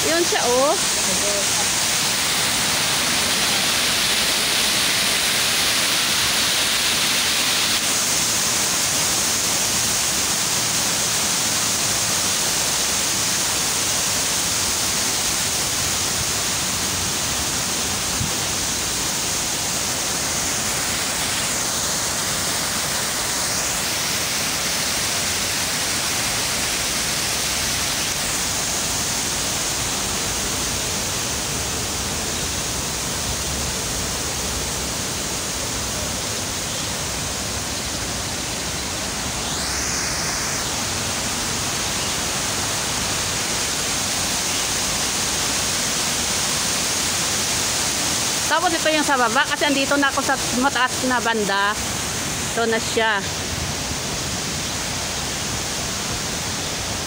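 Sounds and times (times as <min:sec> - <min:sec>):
waterfall rushing into pond: 0:00.0 - 0:57.0.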